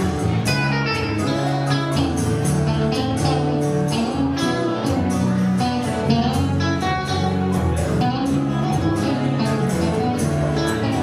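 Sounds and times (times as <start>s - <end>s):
acoustic guitar strumming: 0.0s - 11.0s
sustained electric guitar notes: 0.0s - 11.0s.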